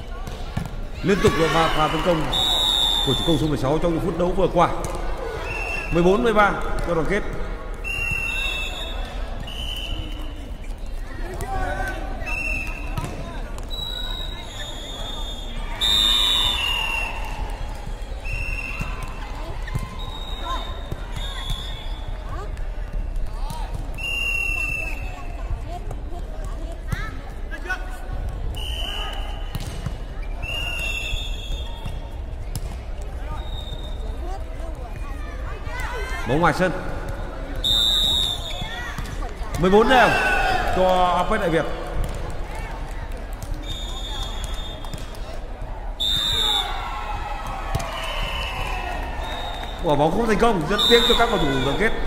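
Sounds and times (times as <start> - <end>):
players' voices: 0.0 - 52.0.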